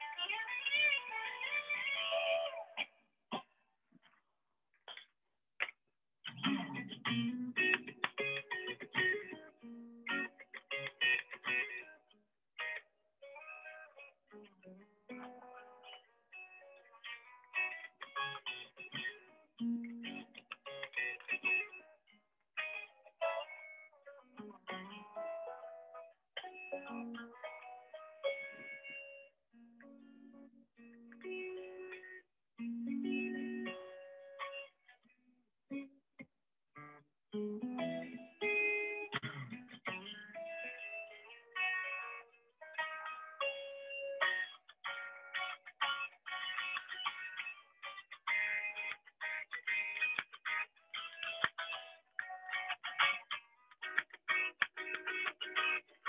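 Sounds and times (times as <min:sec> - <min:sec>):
electric guitar melody: 0:00.0 - 0:02.9, 0:06.2 - 0:35.9, 0:36.8 - 0:56.0.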